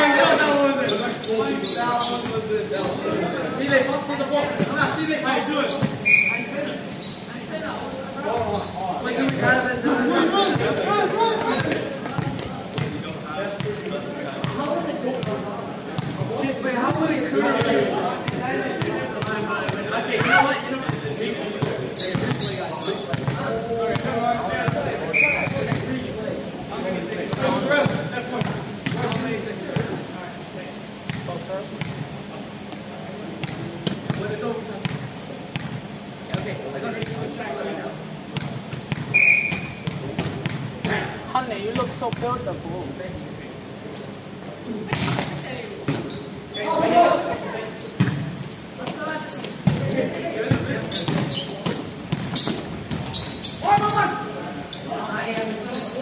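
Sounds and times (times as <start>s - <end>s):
players calling and chatting: 0.0s - 56.0s
short high squeak: 5.7s - 8.8s, 39.2s - 39.8s, 46.1s - 49.6s, 52.3s - 56.0s.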